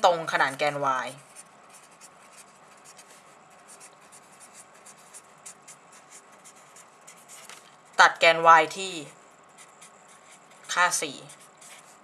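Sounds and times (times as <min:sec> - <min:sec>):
pen scratching on surface: 0:01.2 - 0:07.6, 0:09.0 - 0:12.0.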